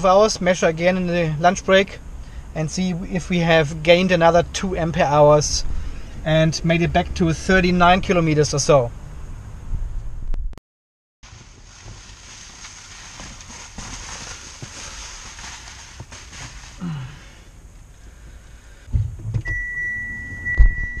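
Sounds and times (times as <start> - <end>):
steady hiss: 11.2 - 18.9
handling and rustling in car: 11.2 - 21.0.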